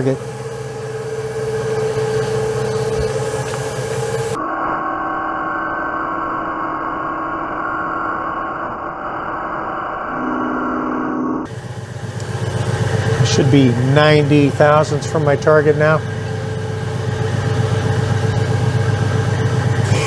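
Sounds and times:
metal lathe humming: 0:00.0 - 0:04.4, 0:11.5 - 0:20.0
muffled steady drone: 0:00.0 - 0:20.0.

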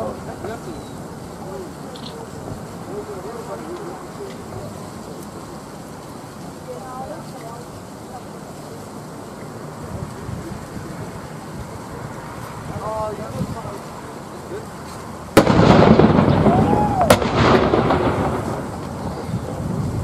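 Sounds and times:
faint voices talking: 0:00.0 - 0:20.0
wind noise on microphone: 0:09.8 - 0:13.9, 0:15.4 - 0:20.0.

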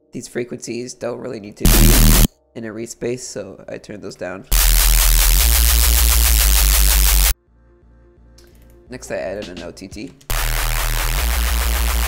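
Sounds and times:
distorted synth bass: 0:01.7 - 0:02.3, 0:04.6 - 0:07.3, 0:10.3 - 0:12.0.

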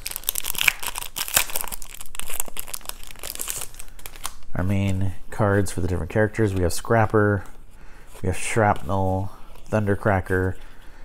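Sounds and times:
plastic wrap crinkling and tearing: 0:00.0 - 0:05.1.

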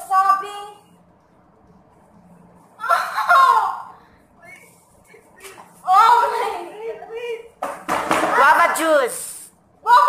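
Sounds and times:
girl laughing loudly: 0:02.8 - 0:03.9.

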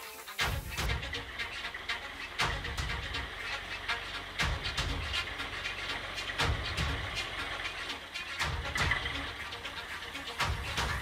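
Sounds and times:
loader clanking and rattling: 0:00.4 - 0:11.0
loader knocking: 0:00.4 - 0:11.0
tractor engine running: 0:00.4 - 0:11.0.

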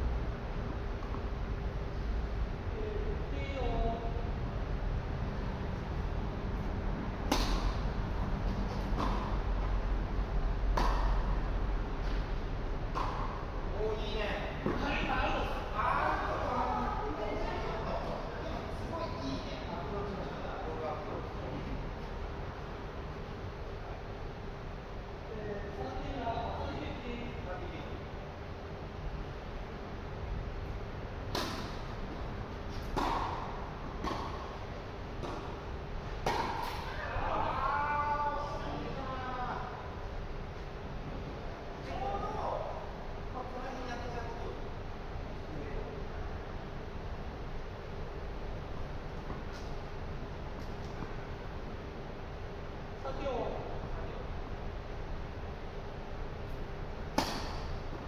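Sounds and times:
steady low hum: 0:00.0 - 0:58.0
rackets hitting tennis balls: 0:07.2 - 0:09.9, 0:10.5 - 0:13.6, 0:31.2 - 0:37.6, 0:56.5 - 0:58.0
ball bouncing on court: 0:10.7 - 0:11.3, 0:12.9 - 0:13.4, 0:32.8 - 0:34.6, 0:35.2 - 0:35.6, 0:36.2 - 0:36.9.

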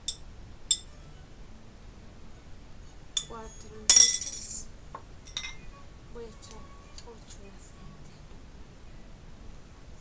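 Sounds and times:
glass jar clinking: 0:03.9 - 0:04.6, 0:05.3 - 0:05.7.

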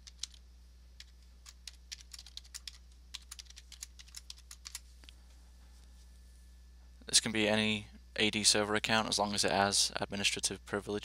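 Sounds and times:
computer keyboard typing: 0:00.0 - 0:00.4, 0:01.0 - 0:04.8
faint low hum: 0:00.0 - 0:11.0.

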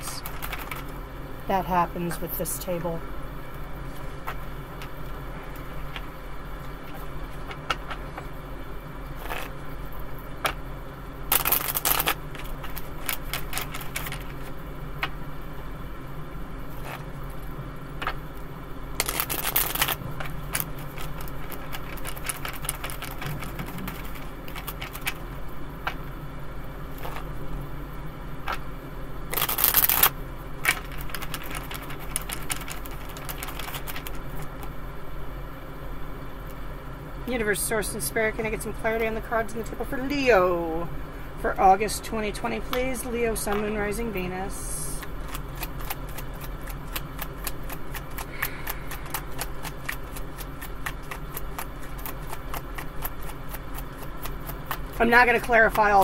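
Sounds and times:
steady low hum: 0:00.0 - 0:56.0
cards being shuffled: 0:00.2 - 0:00.9, 0:09.2 - 0:09.5, 0:11.3 - 0:15.2, 0:16.7 - 0:17.1, 0:19.0 - 0:26.0, 0:27.0 - 0:27.3, 0:28.4 - 0:28.6, 0:29.3 - 0:34.7, 0:45.0 - 0:55.8.

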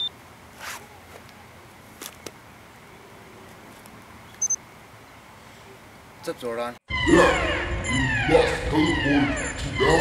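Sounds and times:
outdoor background hiss: 0:00.0 - 0:06.9
digital watch beep: 0:04.4 - 0:04.6.

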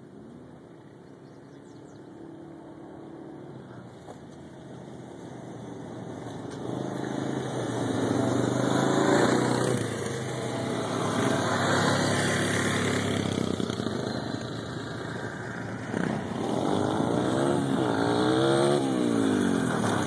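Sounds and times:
dirt bike engine revving: 0:06.6 - 0:20.0.

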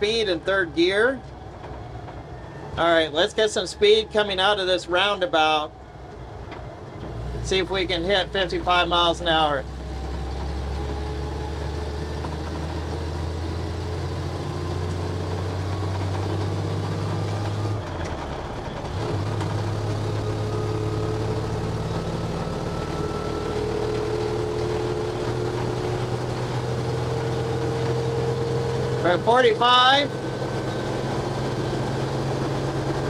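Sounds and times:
truck engine accelerating: 0:00.0 - 0:33.0.

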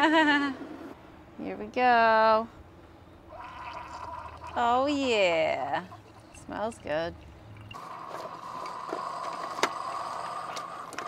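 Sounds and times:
coffee streaming into mug: 0:03.3 - 0:04.6
coffee maker low hum: 0:03.3 - 0:11.0
brewing hiss: 0:07.8 - 0:10.9.

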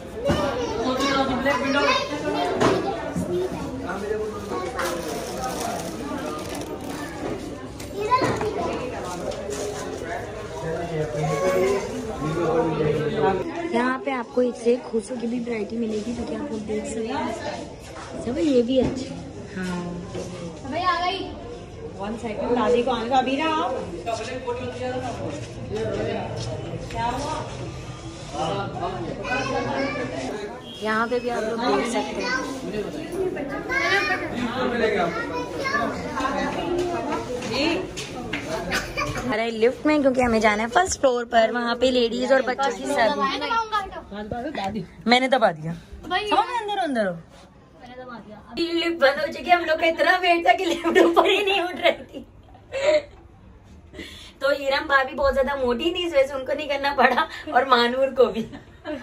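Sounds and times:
children's voices: 0:00.0 - 0:05.8, 0:06.6 - 0:09.3, 0:29.1 - 0:30.6, 0:31.7 - 0:39.4, 0:42.2 - 0:44.3
shoppers chattering: 0:00.0 - 0:59.0.

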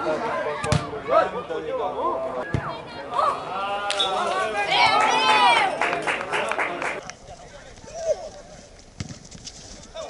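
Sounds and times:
footballers shouting: 0:02.4 - 0:07.0
football being kicked: 0:09.0 - 0:09.4.

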